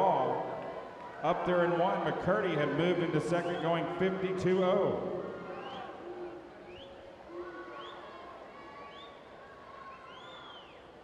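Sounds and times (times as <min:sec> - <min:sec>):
spectators shouting and cheering: 0:00.0 - 0:11.0.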